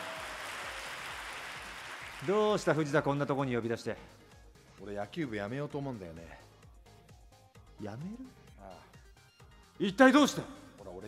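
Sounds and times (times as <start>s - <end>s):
audience applause: 0.0s - 2.7s.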